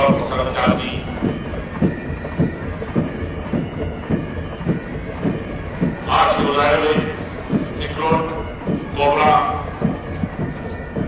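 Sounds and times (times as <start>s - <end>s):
soldiers marching in step: 0.0s - 11.0s.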